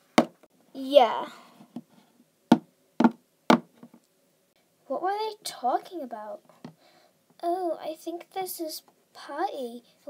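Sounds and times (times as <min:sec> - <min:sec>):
plastic toys knocking on shelf: 0:00.2 - 0:00.4, 0:02.5 - 0:04.0.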